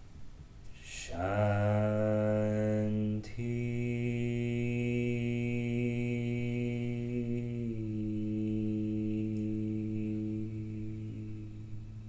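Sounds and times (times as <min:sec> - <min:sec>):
group chanting low note: 0:00.8 - 0:12.0.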